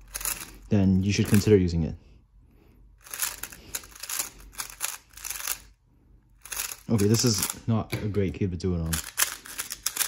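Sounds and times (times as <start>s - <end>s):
speed cube clicking: 0.1s - 0.5s, 3.0s - 5.7s, 6.4s - 7.6s, 8.9s - 10.0s.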